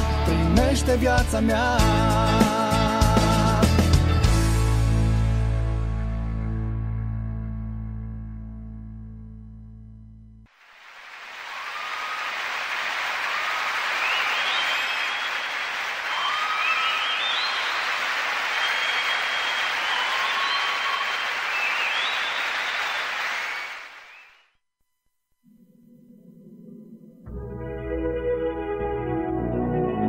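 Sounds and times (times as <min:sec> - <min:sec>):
short chirping whistles: 0:16.2 - 0:17.9, 0:18.5 - 0:24.5.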